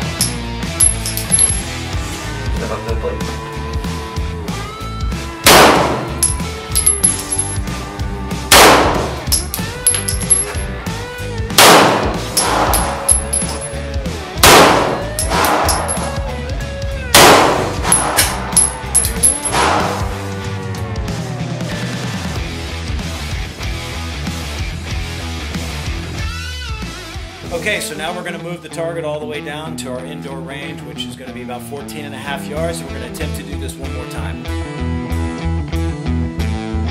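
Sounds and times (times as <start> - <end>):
rock music: 0.0 - 36.9
loud pistol shots: 5.5 - 6.4, 8.5 - 9.4, 11.6 - 13.2, 14.4 - 16.1, 17.2 - 18.6, 19.5 - 20.2.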